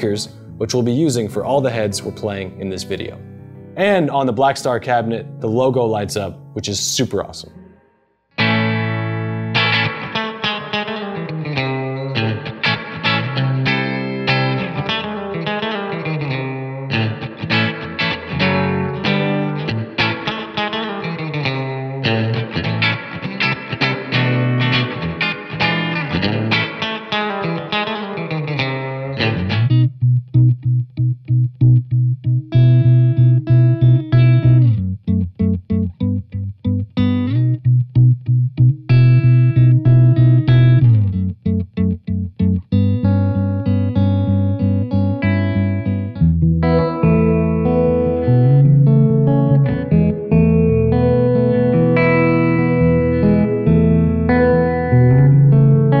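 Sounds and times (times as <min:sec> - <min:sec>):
electric guitar chords: 0:00.0 - 0:56.0.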